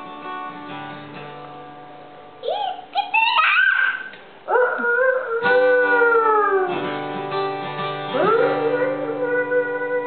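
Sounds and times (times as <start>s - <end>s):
acoustic guitar strumming: 0.0s - 3.3s, 5.4s - 10.0s.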